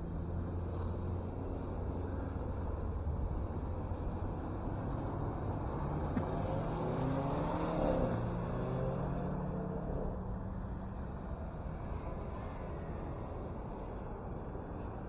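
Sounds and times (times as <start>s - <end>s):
car passing by: 0.0s - 15.0s
low wind rumble on microphone: 0.0s - 15.0s.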